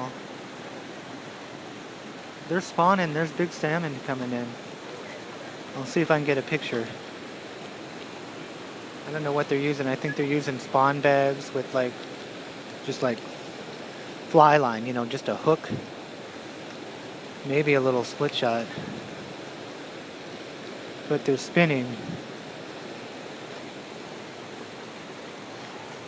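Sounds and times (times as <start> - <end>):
whitewater rushing in rapids: 0.0 - 26.0.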